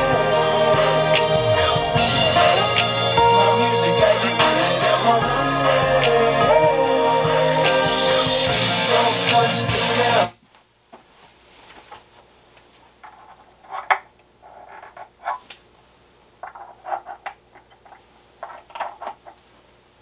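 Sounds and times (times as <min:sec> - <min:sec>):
hip-hop music over speakers: 0:00.0 - 0:10.4.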